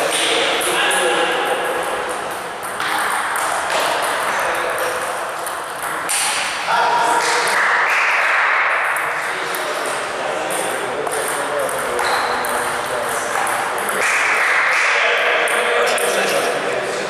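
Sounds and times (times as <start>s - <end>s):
voices and hall noise: 0.0s - 17.0s
table tennis balls clicking: 1.6s - 6.6s, 8.8s - 14.6s.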